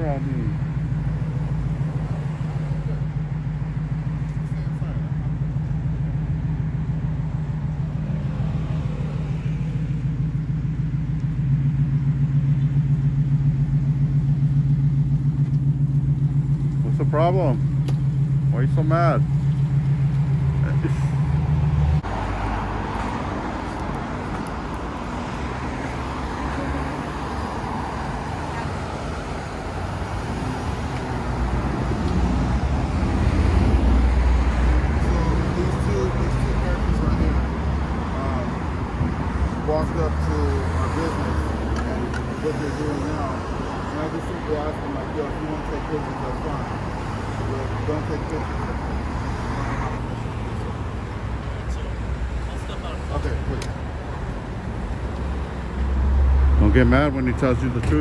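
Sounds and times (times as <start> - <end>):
cars passing on city street: 0.0 - 58.0
low engine hum: 0.0 - 58.0
low rumble: 0.4 - 29.3.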